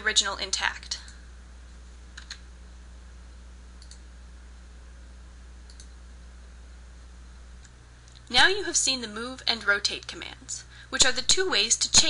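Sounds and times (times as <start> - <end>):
low electrical hum: 0.0 - 12.0
mouse and keyboard clicks: 2.2 - 2.4.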